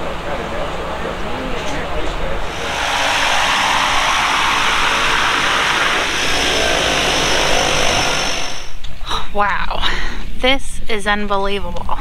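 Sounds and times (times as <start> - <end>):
floatplane engine running: 0.0 - 8.8
thin high whine: 2.3 - 8.8.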